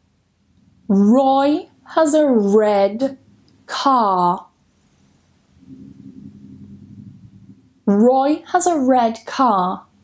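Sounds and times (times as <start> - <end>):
faint low rumble: 0.0 - 10.0.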